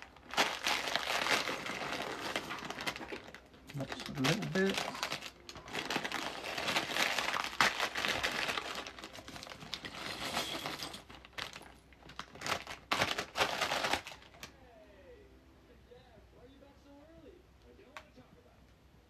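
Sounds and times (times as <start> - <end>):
plastic bag crinkling: 0.0 - 14.5.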